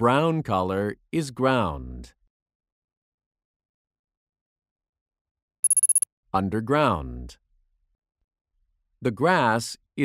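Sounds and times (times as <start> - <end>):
electronic ringing trill: 5.6 - 6.0.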